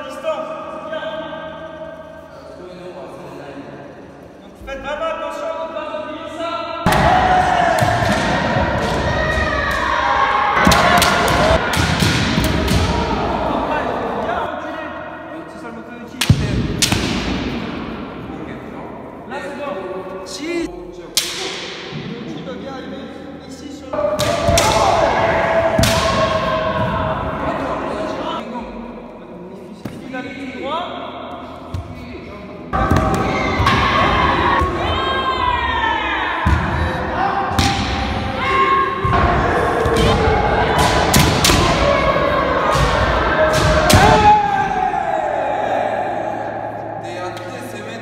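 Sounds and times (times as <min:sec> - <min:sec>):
people shouting: 0:06.8 - 0:14.5, 0:24.0 - 0:28.4, 0:32.8 - 0:47.4
bamboo sword strikes cracking: 0:16.2 - 0:17.3.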